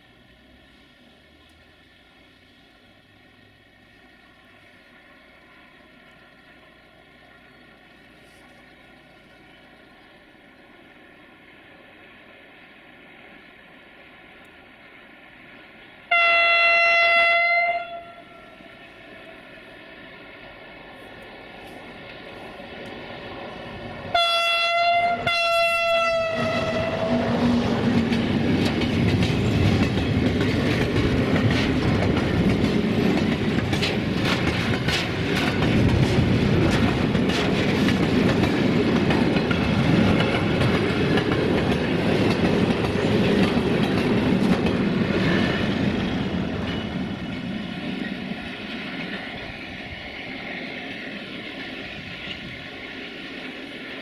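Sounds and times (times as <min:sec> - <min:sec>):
locomotive horn blasts: 0:16.1 - 0:18.6, 0:24.1 - 0:27.2
train wheels clicking over rail joints: 0:25.2 - 0:54.0.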